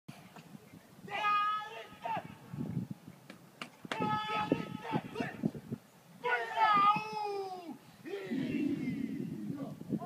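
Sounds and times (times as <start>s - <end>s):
man yelling high-pitched: 1.0s - 2.4s, 4.0s - 5.4s, 6.2s - 8.5s.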